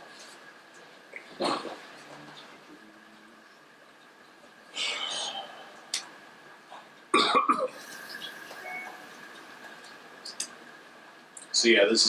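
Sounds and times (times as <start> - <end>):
person coughing: 7.2 - 7.8.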